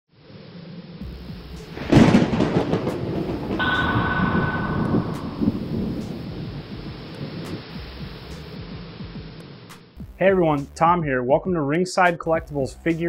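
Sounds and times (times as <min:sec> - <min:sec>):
thunder-like rumble: 0:01.1 - 0:07.7
loud boom: 0:01.8 - 0:06.8
steady high ring: 0:03.6 - 0:06.8.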